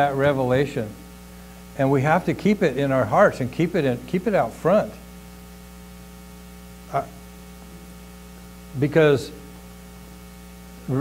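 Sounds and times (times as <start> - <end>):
electrical mains hum: 0.0 - 11.0
man saying uh: 6.9 - 7.2.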